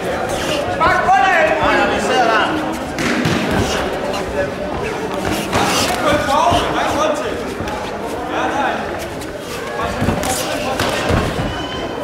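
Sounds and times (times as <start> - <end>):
voices shouting in a hall: 0.0 - 12.0.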